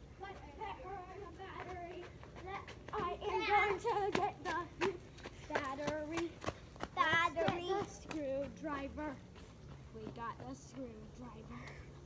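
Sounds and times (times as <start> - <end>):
children talking and calling out: 0.0 - 9.3.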